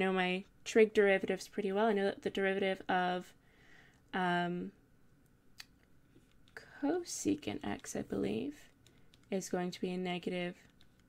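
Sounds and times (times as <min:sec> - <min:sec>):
woman speaking: 0:00.0 - 0:03.4, 0:04.2 - 0:04.8, 0:06.6 - 0:10.7.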